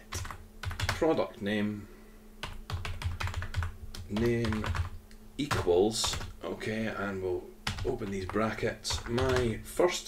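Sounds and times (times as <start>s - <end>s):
computer keyboard typing: 0.0s - 1.0s, 2.4s - 6.4s, 7.6s - 9.6s.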